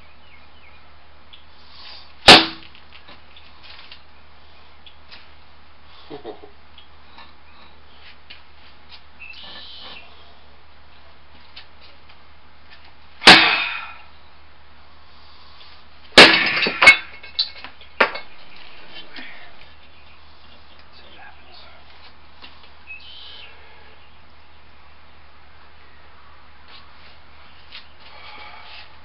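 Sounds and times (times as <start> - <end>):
concrete slab breaking and clattering: 16.2 - 18.2.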